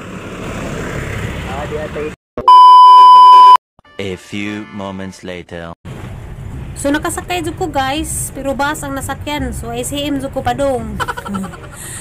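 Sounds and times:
electronic beep: 0:02.4 - 0:03.6.

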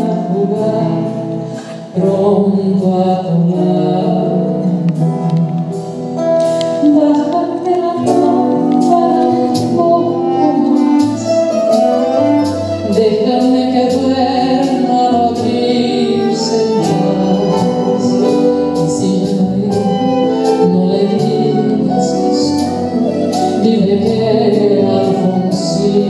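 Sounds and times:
acoustic guitars strumming: 0:00.0 - 0:26.0
woman singing into a microphone: 0:00.0 - 0:26.0.

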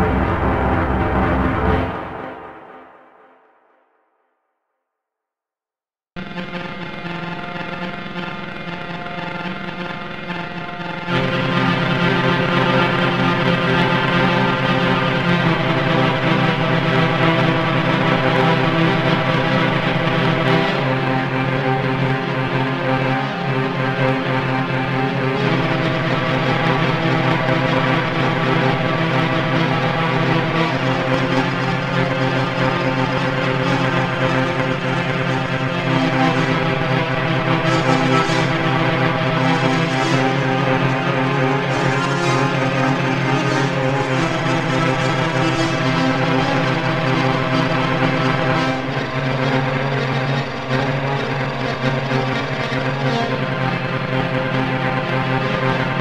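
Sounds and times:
synthesized orchestral drone: 0:00.0 - 0:03.4, 0:06.2 - 0:56.0.

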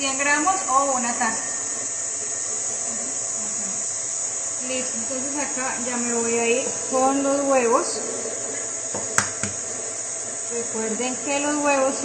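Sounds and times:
electric stand mixer running: 0:00.0 - 0:12.0.

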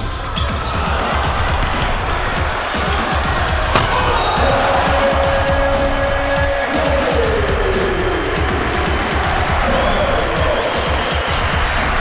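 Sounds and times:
crowd noise: 0:00.0 - 0:12.0
basketball bouncing on hardwood: 0:03.7 - 0:04.6.

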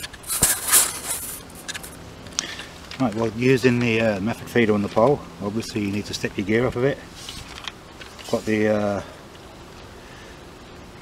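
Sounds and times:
camera rustling against microphone: 0:00.0 - 0:03.2, 0:07.1 - 0:08.7.

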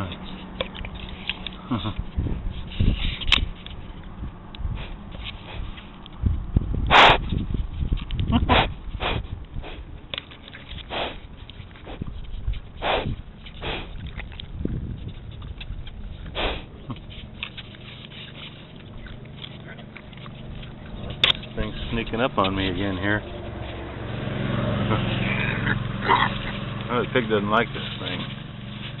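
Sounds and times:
pig snorting and sniffing: 0:04.8 - 0:05.9, 0:06.9 - 0:29.0.

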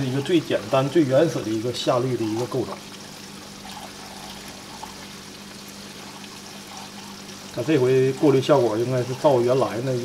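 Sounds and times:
low steady hum: 0:00.0 - 0:10.0
water pouring and splashing: 0:00.0 - 0:10.0.

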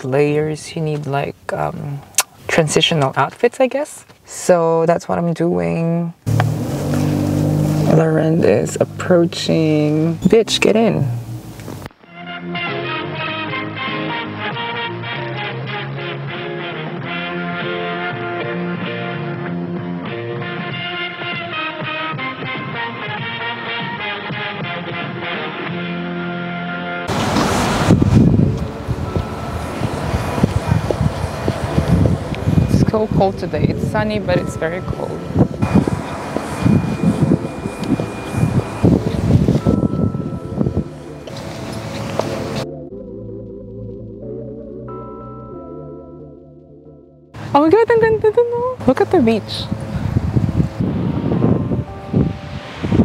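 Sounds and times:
wind gusting on microphone: 0:27.1 - 0:42.6, 0:47.4 - 0:53.0.

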